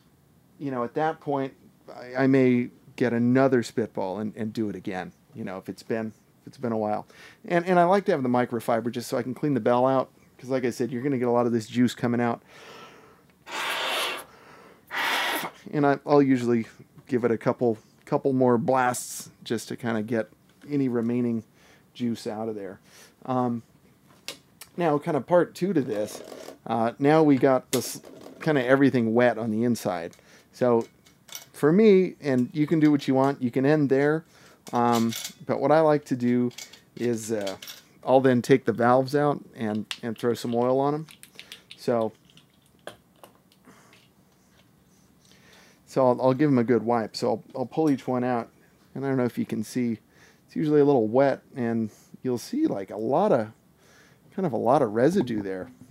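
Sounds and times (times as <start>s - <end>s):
breath blown through trumpet: 13.4s - 14.3s, 14.9s - 15.6s.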